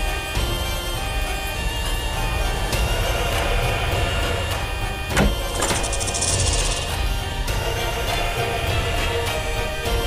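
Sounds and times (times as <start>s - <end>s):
dramatic background score: 0.0s - 10.0s
high fast shimmering rattle: 5.6s - 7.2s.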